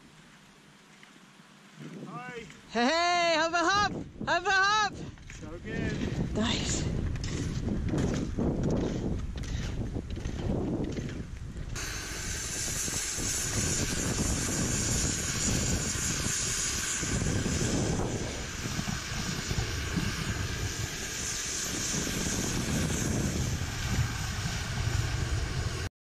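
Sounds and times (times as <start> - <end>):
strong gusting wind: 3.5 - 25.9.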